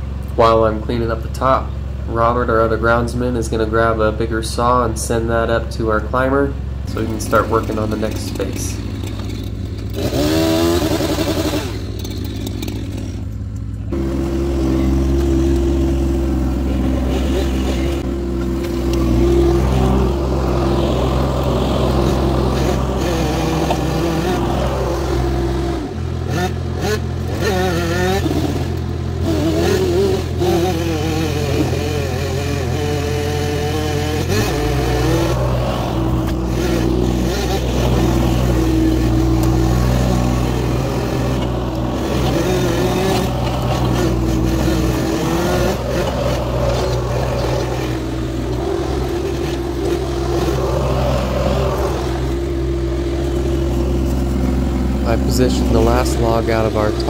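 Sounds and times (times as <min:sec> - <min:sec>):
skid steer engine under load: 0:00.0 - 0:57.0
wavering high whine: 0:31.3 - 0:57.0.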